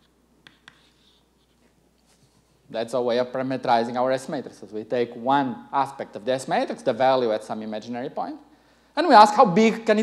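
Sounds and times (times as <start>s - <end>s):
chalk tapping on blackboard: 0.0s - 1.2s
chalk scratching: 0.4s - 2.6s.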